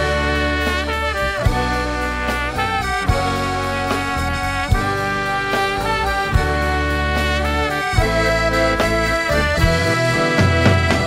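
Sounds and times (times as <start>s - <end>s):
bass line: 0.0s - 11.0s
reedy melody line: 0.0s - 11.0s
drum hits: 8.0s - 11.0s.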